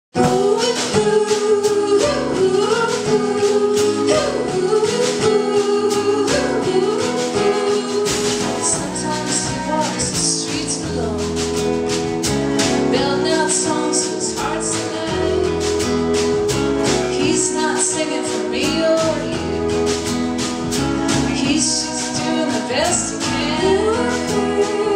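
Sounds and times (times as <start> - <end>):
live band with singing: 0.1 - 24.9
steady percussion beat: 0.2 - 24.9.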